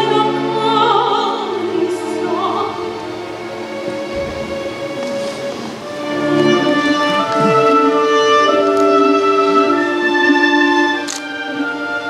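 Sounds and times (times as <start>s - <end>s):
orchestra holding long note: 2.7s - 12.0s.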